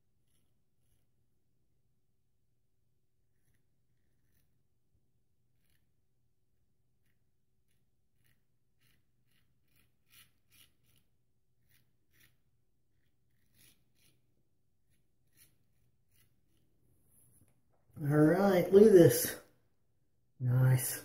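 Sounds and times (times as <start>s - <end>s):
straight razor scraping stubble: 3.3s - 4.6s, 7.0s - 16.8s.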